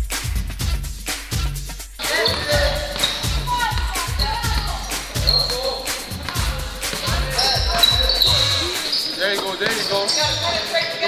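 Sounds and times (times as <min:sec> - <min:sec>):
background music with steady beat: 0:00.0 - 0:11.0
basketball bouncing: 0:02.0 - 0:11.0
sneaker squeaks: 0:02.0 - 0:11.0.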